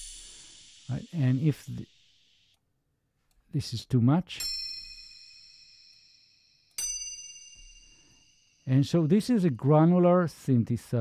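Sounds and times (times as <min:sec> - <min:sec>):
bell-like metallic tone: 0:04.4 - 0:09.7.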